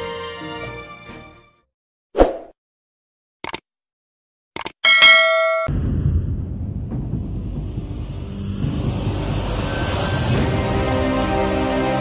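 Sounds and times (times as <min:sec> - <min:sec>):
bell ding sound effect: 0:04.8 - 0:05.7
low rumble: 0:05.7 - 0:09.7.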